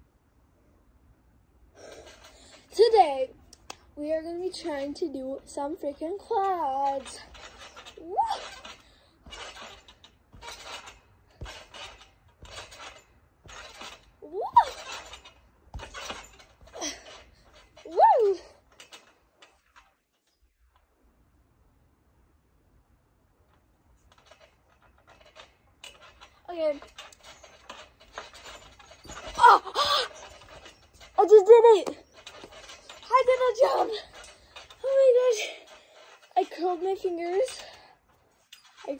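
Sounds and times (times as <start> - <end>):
trampoline springs clinking and creaking: 1.8 - 21.3, 23.4 - 38.9
dull thud from trampoline mat: 7.3 - 17.7
girl shouting woo: 8.0 - 8.4, 14.3 - 14.8, 17.9 - 18.5.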